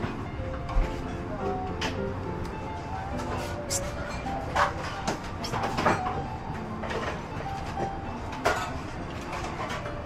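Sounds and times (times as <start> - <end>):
faint music: 0.0 - 10.0
low cafe rumble: 0.0 - 10.0.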